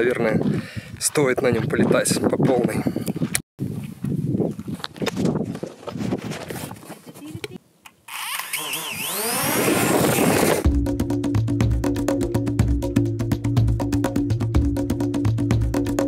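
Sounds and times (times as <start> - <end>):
man's voice: 0.0 - 2.8
music with steady beat: 10.6 - 16.0.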